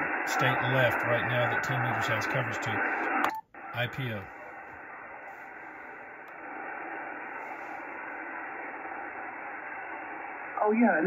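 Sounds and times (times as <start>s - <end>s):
radio receiver hiss: 0.0s - 11.0s.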